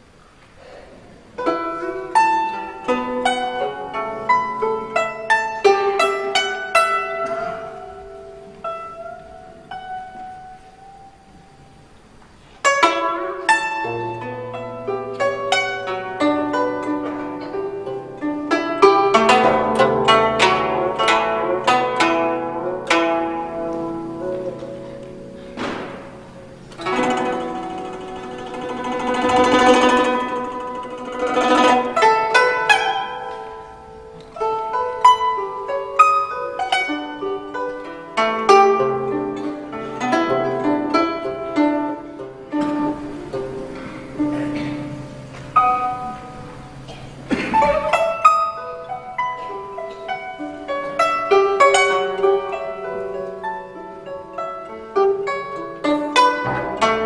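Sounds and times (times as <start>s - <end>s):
plucked zither melody: 1.4s - 57.0s.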